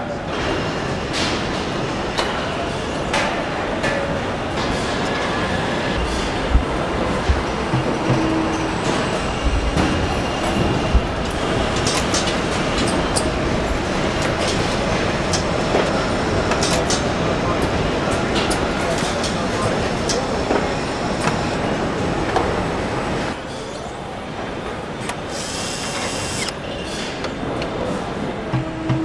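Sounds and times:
machinery din: 4.6 - 19.6.

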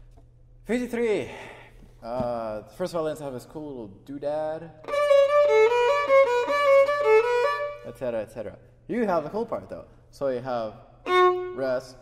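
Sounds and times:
solo violin playing: 4.8 - 7.9, 11.0 - 12.0.

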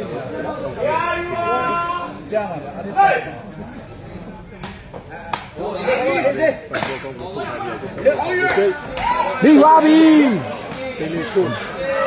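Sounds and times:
people shouting: 8.2 - 12.0.

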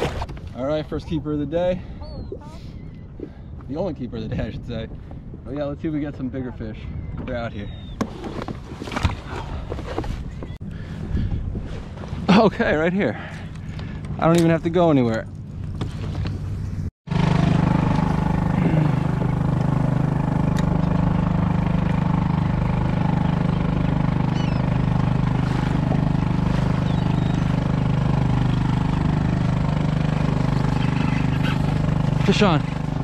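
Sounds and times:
motor humming: 17.1 - 33.0.

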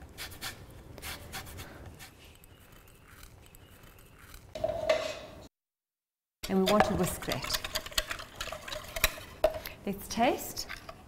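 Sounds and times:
grater rasping on orange: 0.2 - 4.5.

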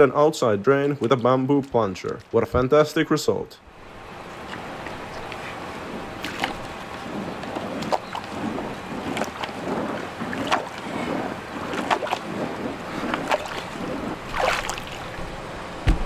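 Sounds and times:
pole plunging into water sloshing: 6.0 - 15.3
sharp splashes or knocks: 6.2 - 6.8, 7.5 - 16.0.

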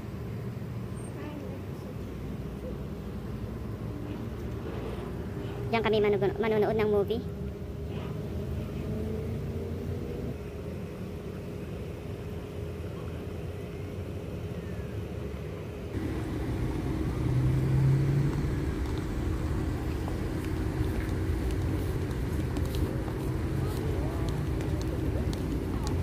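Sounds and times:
faint continuous hum: 0.0 - 26.0
road traffic rumble: 0.0 - 26.0
car passing: 4.5 - 10.6, 16.0 - 26.0.

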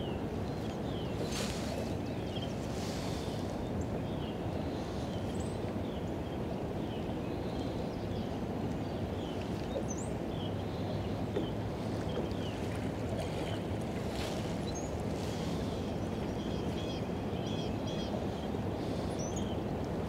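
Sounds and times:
steady wind: 0.0 - 20.0
water noise around boat: 0.0 - 20.0.

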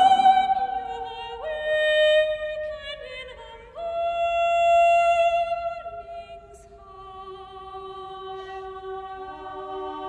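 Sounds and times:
soprano singing in echoing church: 0.0 - 10.0.

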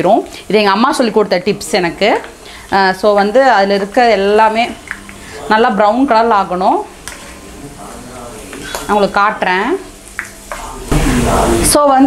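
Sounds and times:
woman talking: 0.0 - 6.9, 8.9 - 9.9, 11.6 - 12.0
oil sizzling in a pan: 0.0 - 12.0
steel spoon stirring: 7.0 - 7.6.

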